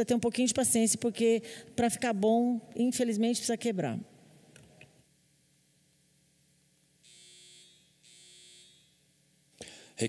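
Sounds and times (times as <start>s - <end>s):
high-pitched electronic buzzes: 7.0s - 9.0s.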